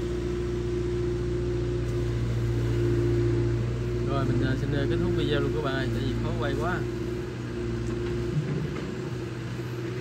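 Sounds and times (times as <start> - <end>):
excavator diesel engine running: 0.0 - 10.0.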